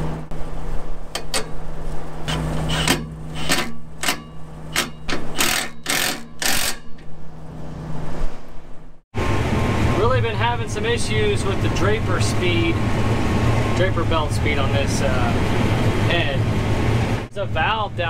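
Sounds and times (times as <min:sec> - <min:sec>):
combine harvester running: 0:00.0 - 0:08.0, 0:09.2 - 0:18.0
steady engine hum: 0:00.0 - 0:18.0
metallic clanks and scrapes: 0:02.3 - 0:07.2.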